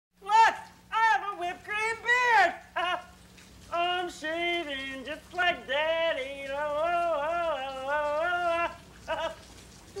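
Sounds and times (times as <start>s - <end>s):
man singing nasal notes: 3.7s - 9.3s.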